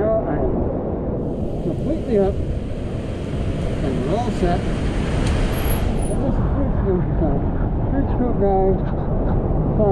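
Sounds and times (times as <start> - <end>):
low outdoor rumble: 0.0 - 9.9.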